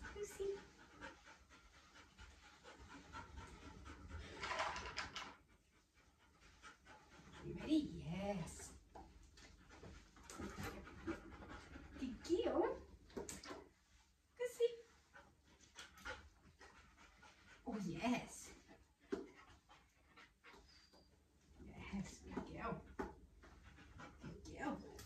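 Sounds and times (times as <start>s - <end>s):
dog panting: 0.0s - 13.7s, 14.9s - 25.0s.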